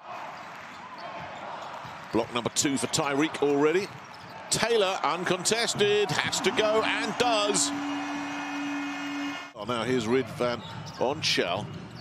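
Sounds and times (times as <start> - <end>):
arena crowd hubbub: 0.0 - 12.0.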